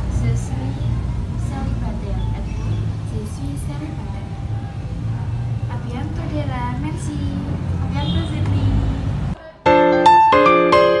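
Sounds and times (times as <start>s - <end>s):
girl speaking: 9.4s - 9.7s.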